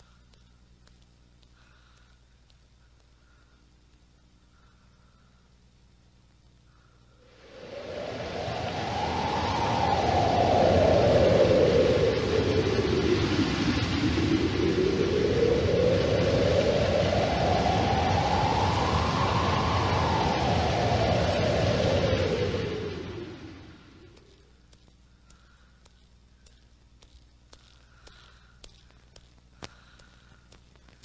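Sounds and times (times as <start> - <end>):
violent wind storm howling: 7.2 - 24.5.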